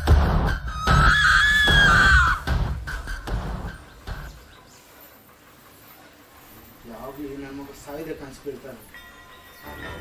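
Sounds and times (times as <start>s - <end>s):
horror music with pulsing beats: 0.0s - 4.4s
high wavering scream: 0.5s - 3.2s.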